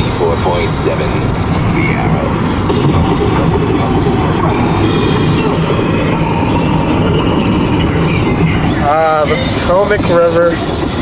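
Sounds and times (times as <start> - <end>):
car tyre and wind noise: 0.0 - 11.0.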